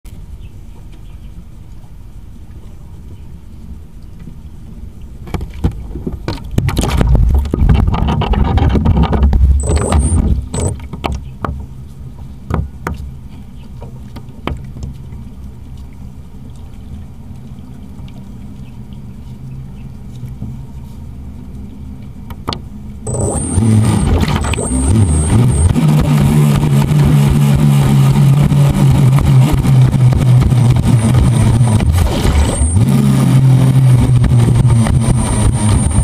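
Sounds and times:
low steady hum: 0:00.1 - 0:36.0
water splashing against boat hull: 0:05.0 - 0:36.0.

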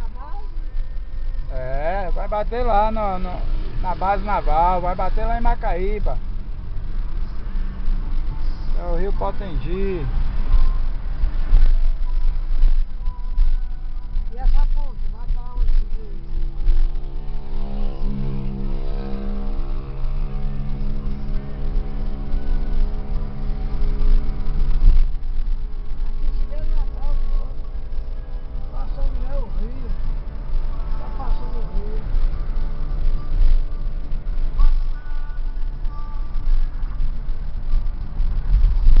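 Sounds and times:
road and engine rumble: 0:00.0 - 0:39.0
steady humming tone: 0:00.0 - 0:39.0.

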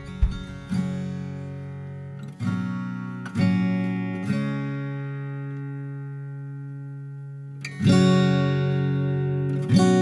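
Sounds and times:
strummed acoustic guitar chord: 0:00.0 - 0:10.0.

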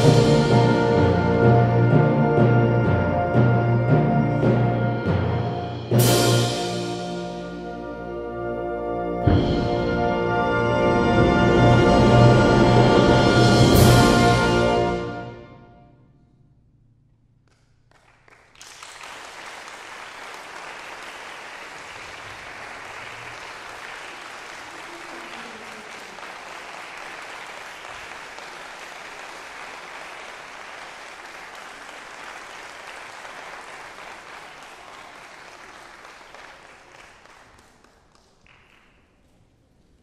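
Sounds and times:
audience applauding: 0:17.9 - 0:39.3.

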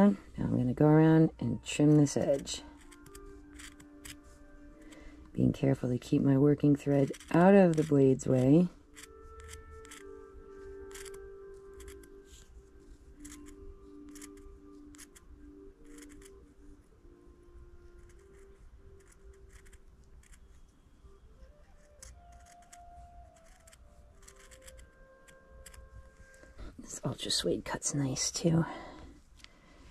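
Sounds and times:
soft background music: 0:00.0 - 0:29.9
scissors snipping fabric: 0:02.2 - 0:04.2.

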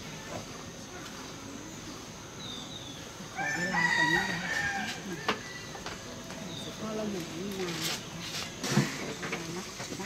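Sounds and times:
rooster crowing: 0:03.4 - 0:05.8.

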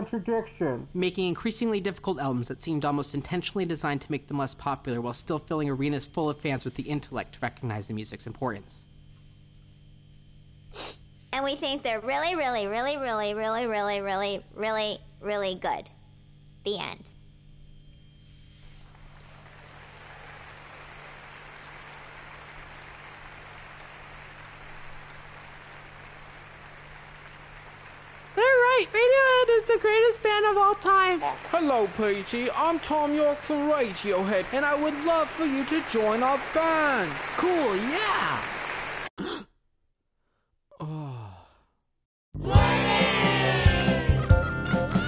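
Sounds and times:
person sighing: 0:39.2 - 0:39.6, 0:40.7 - 0:41.8.

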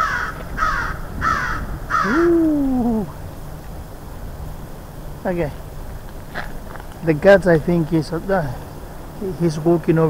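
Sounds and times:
crow cawing: 0:00.0 - 0:03.0.

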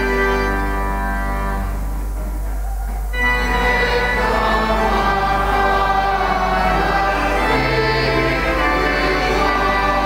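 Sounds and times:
organ playing: 0:00.0 - 0:10.0
choir singing a hymn: 0:02.5 - 0:10.0.

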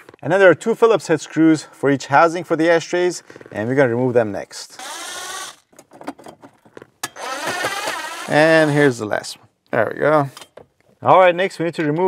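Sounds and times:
cordless drill motor whine: 0:04.8 - 0:05.7, 0:07.2 - 0:08.3.

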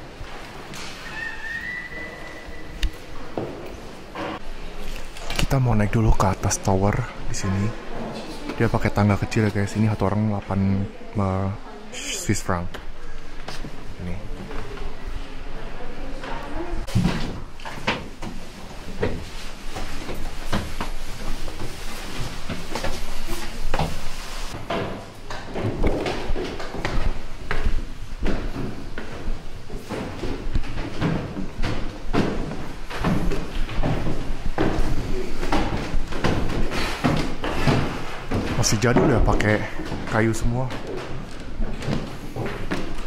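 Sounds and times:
footsteps on stairs: 0:16.8 - 0:43.0.

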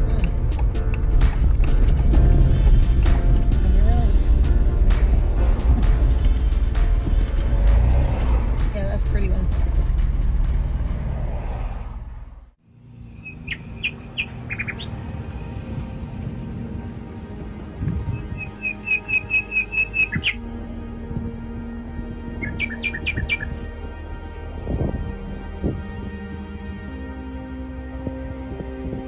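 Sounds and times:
calm background music: 0:00.0 - 0:10.9, 0:12.7 - 0:29.0
road noise: 0:00.0 - 0:29.0
songbird chirps: 0:13.0 - 0:15.1, 0:17.6 - 0:20.4, 0:22.4 - 0:23.6.

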